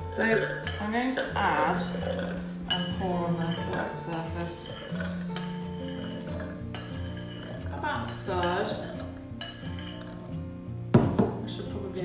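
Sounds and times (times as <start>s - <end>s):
background music held notes: 0.0s - 12.0s
light clinks of bowl: 2.7s - 10.1s.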